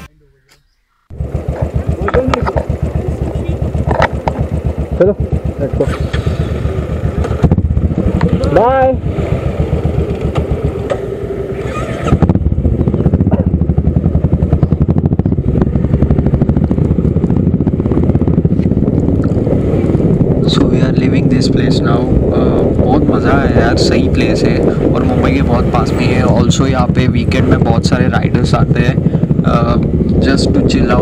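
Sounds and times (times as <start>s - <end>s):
motorcycle engine running: 1.1s - 31.0s.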